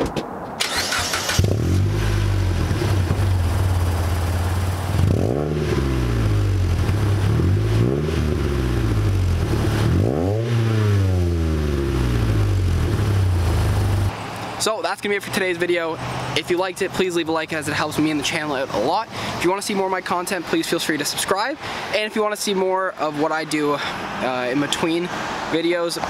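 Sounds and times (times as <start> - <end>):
starter motor whir: 0.6 - 1.9
car engine idling and revving: 0.6 - 14.5.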